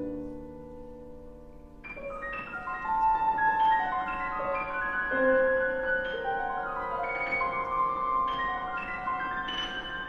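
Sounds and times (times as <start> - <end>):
grand piano notes: 0.0 - 10.0.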